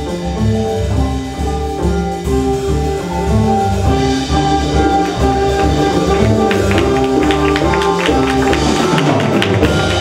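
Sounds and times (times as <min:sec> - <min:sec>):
flute melody: 0:00.0 - 0:10.0
jazz fusion ensemble playing: 0:00.0 - 0:10.0.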